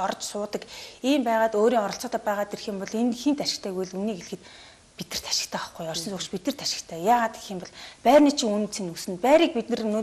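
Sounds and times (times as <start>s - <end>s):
woman speaking: 0.0s - 4.4s, 5.0s - 10.0s.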